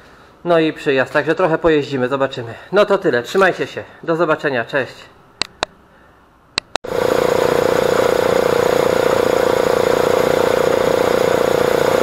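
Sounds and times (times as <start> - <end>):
short clicks: 5.4 - 5.8, 6.6 - 6.8
air compressor running: 6.9 - 12.0.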